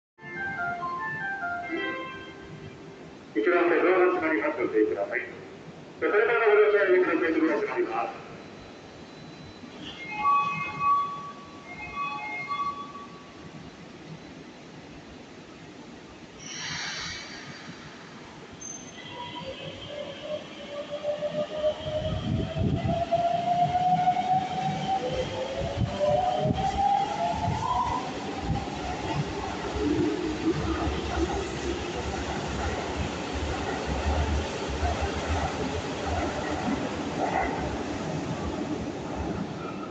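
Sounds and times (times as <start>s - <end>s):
electric train inverter whine: 7.1s - 39.9s
train running gear rumble: 25.2s - 39.9s.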